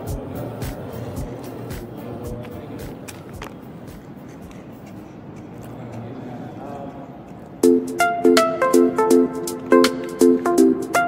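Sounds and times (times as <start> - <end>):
steady room hum: 0.0 - 11.0.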